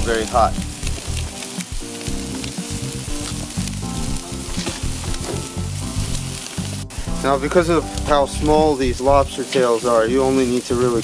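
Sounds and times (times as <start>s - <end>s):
seafood sizzling on a grill: 0.0s - 11.0s.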